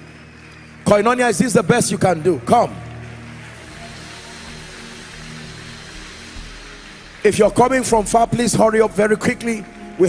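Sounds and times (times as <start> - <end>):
crowd noise in a large hall: 0.0 - 10.0
soft music with sustained chords: 0.0 - 10.0.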